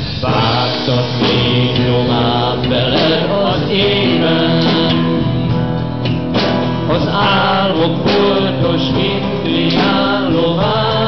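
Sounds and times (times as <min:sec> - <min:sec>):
person singing: 0:00.0 - 0:05.6, 0:06.8 - 0:11.0
live guitar band music: 0:00.0 - 0:11.0.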